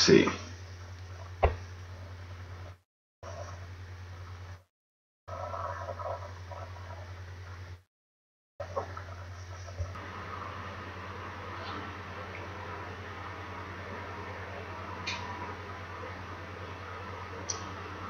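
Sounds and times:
low electrical hum and hiss: 8.6 - 18.0.

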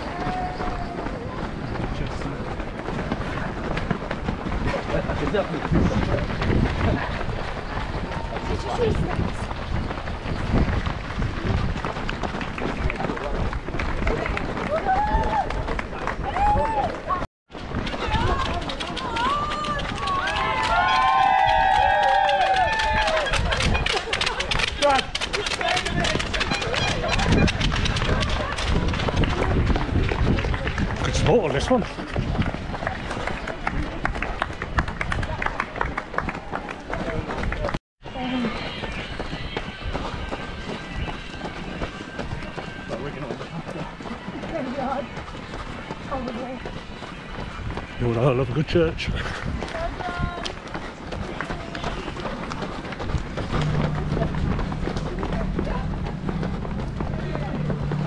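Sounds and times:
people shouting and cheering: 0.0 - 2.3, 4.7 - 9.4, 12.6 - 17.2, 17.9 - 45.1
runners' feet pounding on tarmac: 0.0 - 58.0
indistinct voices: 49.7 - 58.0.

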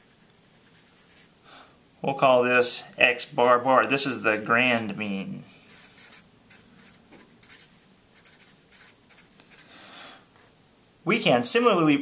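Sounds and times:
marker scratching on paper: 5.7 - 9.7.

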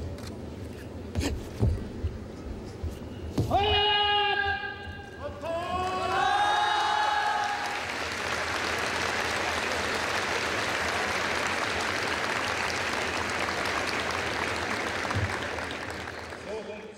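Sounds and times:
audience applauding: 5.7 - 16.9.

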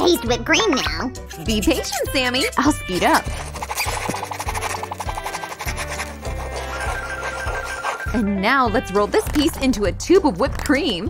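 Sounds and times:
background music: 0.0 - 11.0
marker scratching on card: 1.6 - 8.2.

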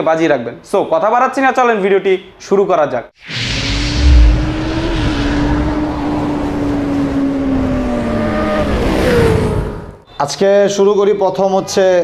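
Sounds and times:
deep hit: 3.7 - 6.1.

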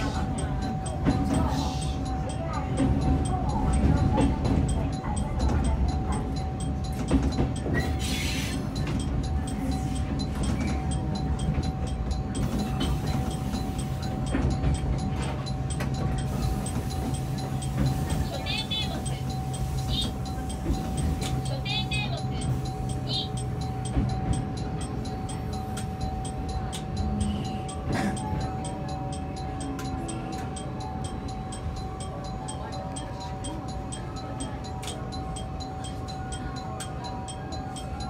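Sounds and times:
train wheels rumbling on rail: 0.0 - 38.0.

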